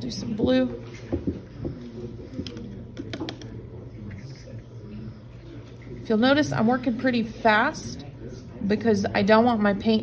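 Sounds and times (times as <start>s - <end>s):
paintbrush tapping on paper: 2.4s - 3.5s.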